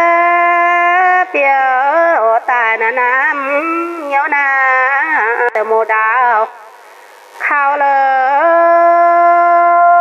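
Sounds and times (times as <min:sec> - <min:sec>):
woman singing long sliding notes: 0:07.4 - 0:10.0.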